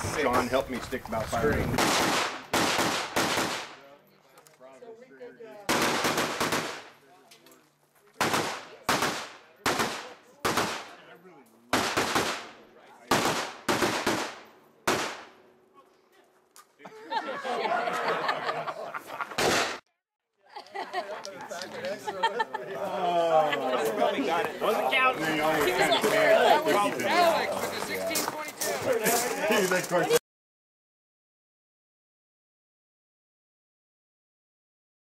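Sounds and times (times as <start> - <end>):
people talking: 0.0 - 1.8, 20.7 - 30.2
rifle shots with echo: 1.8 - 3.9, 5.7 - 7.0, 8.2 - 11.0, 11.7 - 15.4.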